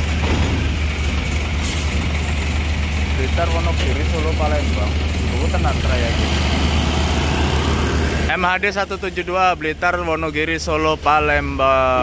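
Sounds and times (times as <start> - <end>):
bus diesel engine running: 0.0 - 12.0.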